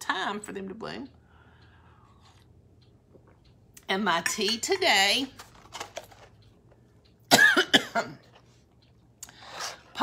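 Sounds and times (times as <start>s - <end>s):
person coughing: 7.3s - 8.3s.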